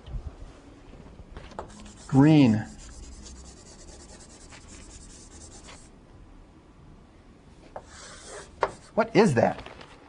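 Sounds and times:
writing on a board: 1.6s - 5.9s, 7.8s - 9.0s.

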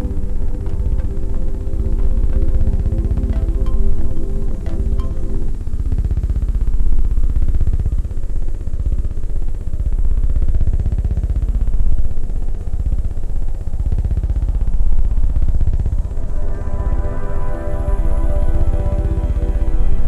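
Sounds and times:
electronic music with buzzing pulse: 0.0s - 9.4s, 13.9s - 20.0s
rising and falling synth sweep: 16.0s - 20.0s.

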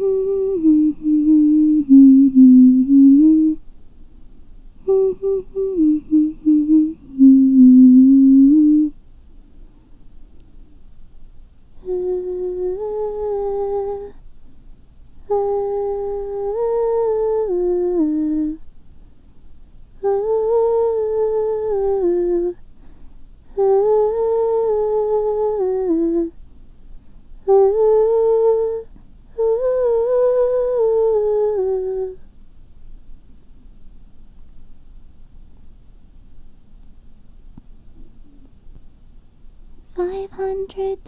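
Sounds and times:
woman humming a slow melody: 0.0s - 3.6s, 4.8s - 9.0s, 11.8s - 14.2s, 15.2s - 18.7s, 20.0s - 22.6s, 23.5s - 26.4s, 27.4s - 32.3s, 39.9s - 41.0s.

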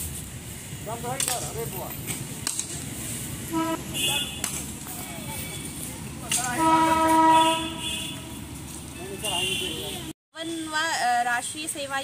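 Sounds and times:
horn long steady note: 3.5s - 4.3s, 6.5s - 8.5s.

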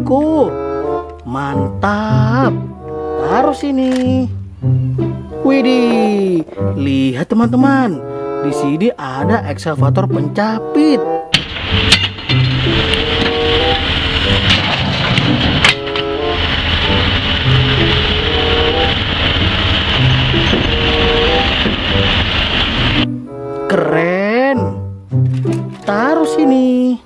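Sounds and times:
background music: 0.0s - 27.0s
excavator machine noise: 11.4s - 23.1s.

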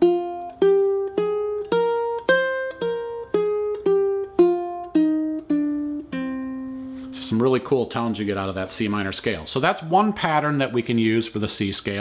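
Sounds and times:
ukulele plucked notes: 0.0s - 7.6s.

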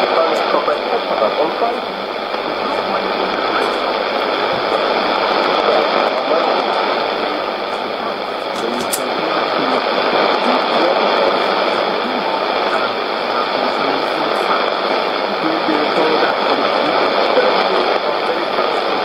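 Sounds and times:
faint voice in static: 0.0s - 19.0s
radio static hiss: 0.0s - 19.0s.

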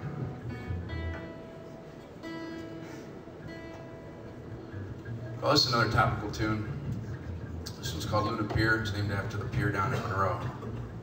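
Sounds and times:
plucked string instrument notes: 0.0s - 11.0s.

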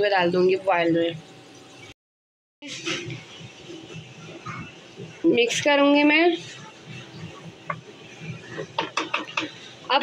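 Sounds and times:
wooden spoon stirring liquid: 2.8s - 9.9s
spoon scraping metal wok: 5.6s - 10.0s.

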